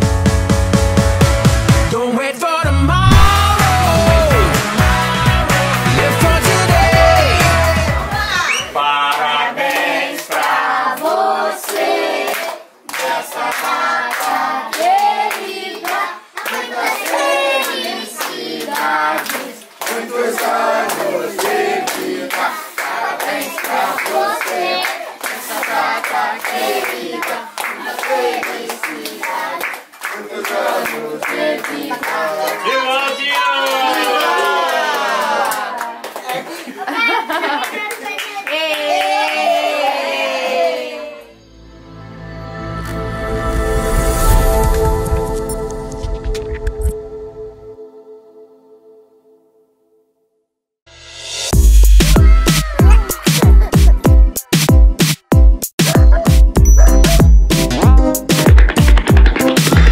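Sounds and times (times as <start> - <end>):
group singing birthday song: 2.0 - 33.2
hand-clapping in time: 3.1 - 36.5, 52.0 - 59.9
held musical tone: 41.3 - 49.6, 55.9 - 59.9.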